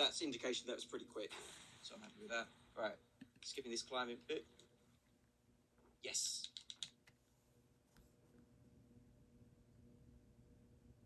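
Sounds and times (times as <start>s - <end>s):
computer mouse clicks: 6.4s - 7.2s.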